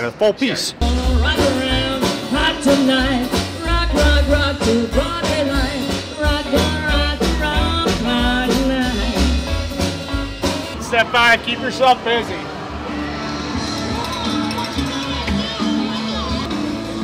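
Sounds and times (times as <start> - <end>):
deep upright bass notes: 0.8 - 10.8
live rock and roll band: 0.8 - 11.4.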